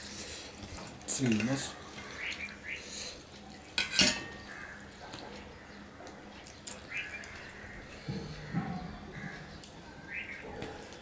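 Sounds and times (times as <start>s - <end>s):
metal bowl clinking on plate: 3.8s - 4.4s.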